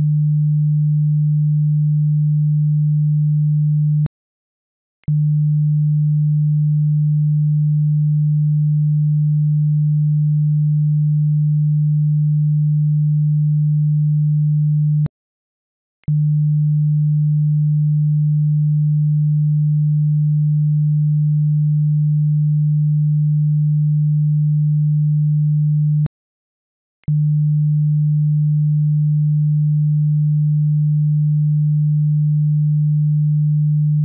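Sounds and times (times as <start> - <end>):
low sine-wave test tone: 0.0 - 4.1, 5.0 - 15.1, 16.1 - 26.1, 27.0 - 34.0.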